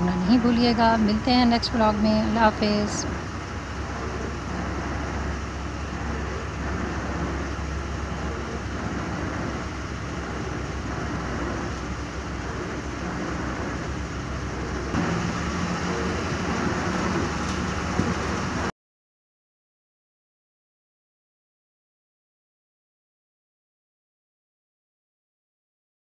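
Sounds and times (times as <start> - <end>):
engine and road rumble: 0.0 - 18.7
low hum: 0.0 - 18.7.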